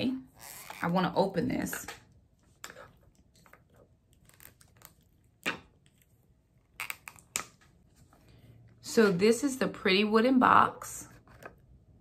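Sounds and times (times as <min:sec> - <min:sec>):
wrapping rustling and crinkling: 0:02.4 - 0:08.2.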